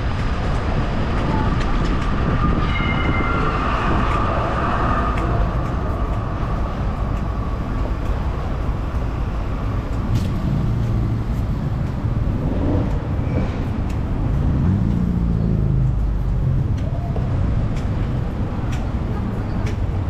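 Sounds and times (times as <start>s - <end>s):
high whine: 0.0s - 12.3s
traffic rumble: 0.0s - 20.0s
tram passing: 0.0s - 20.0s.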